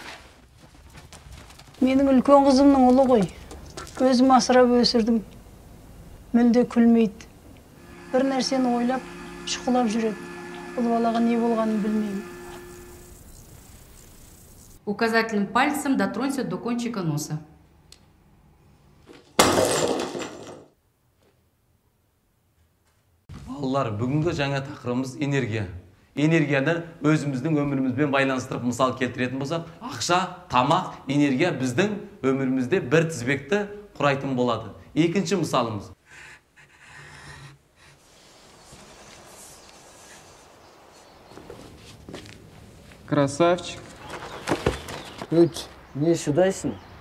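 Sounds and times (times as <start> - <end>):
glass window smashing: 19.4 - 20.6.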